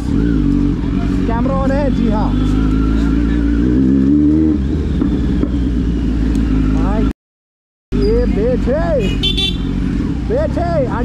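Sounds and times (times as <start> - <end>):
motorcycle engine running: 0.0 - 7.1, 7.9 - 11.0.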